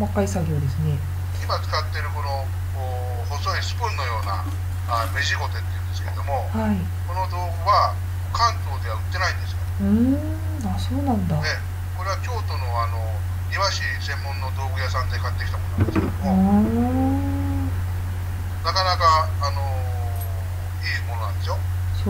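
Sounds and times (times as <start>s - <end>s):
steady low hum: 0.0s - 22.0s
person speaking: 9.8s - 11.6s, 15.8s - 17.8s
brief knock: 15.8s - 16.3s.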